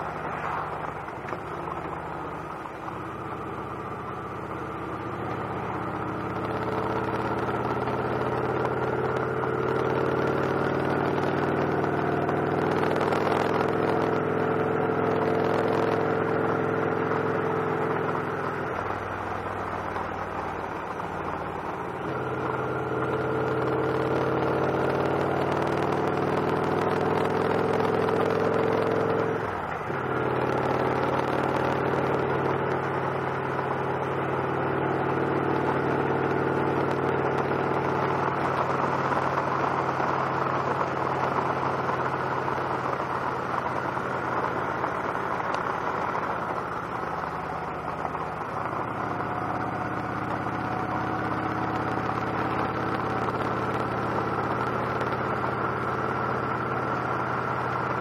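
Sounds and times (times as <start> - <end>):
motorcycle engine cruising: 0.0 - 58.0.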